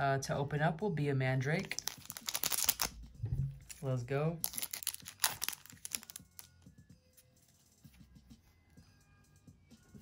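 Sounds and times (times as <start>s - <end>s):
cards clicking and tapping: 1.7s - 2.9s
foil pack ripping open: 1.7s - 2.9s, 4.4s - 6.5s.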